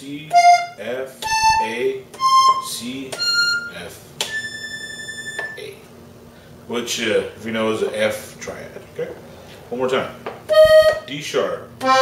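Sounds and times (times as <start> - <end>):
accordion high note: 0.3 - 5.6, 10.5 - 11.1, 11.8 - 12.0.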